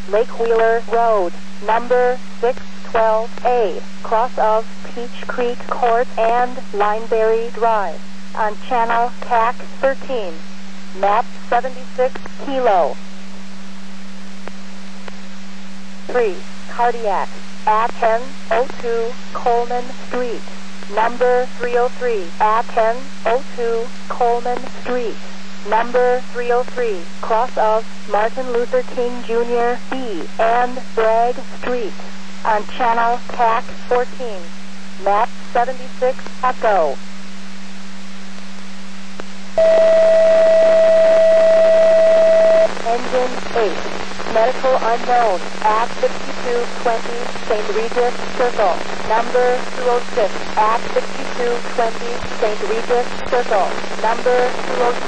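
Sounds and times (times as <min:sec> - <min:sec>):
steady hum: 0:00.0 - 0:55.0
steady low radio tone: 0:00.0 - 0:55.0
radio hiss: 0:39.2 - 0:55.0
loud steady alert tone: 0:39.6 - 0:43.6.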